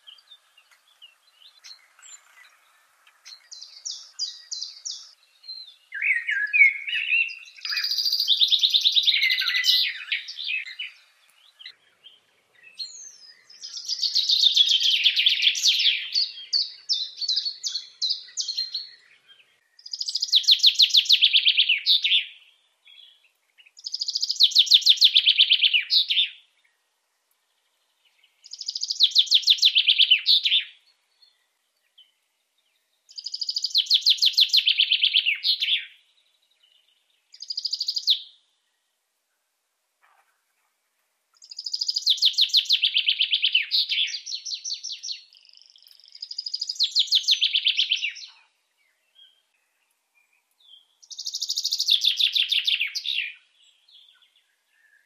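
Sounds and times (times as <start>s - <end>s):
bird singing trilled song: 0.0s - 39.0s, 41.3s - 55.0s.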